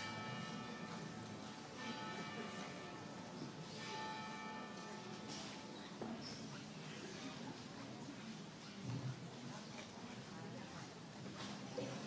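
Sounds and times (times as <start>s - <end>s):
church bell tolling: 0.0s - 5.8s.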